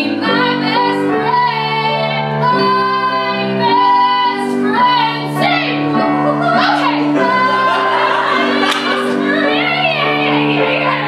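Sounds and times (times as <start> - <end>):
musical accompaniment: 0.0 - 11.0
women singing a duet: 0.0 - 11.0.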